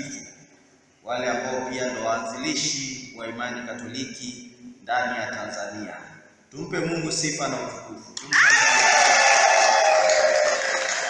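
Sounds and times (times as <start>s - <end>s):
clapping: 8.2s - 11.0s
congregation ululating and cheering: 8.2s - 11.0s.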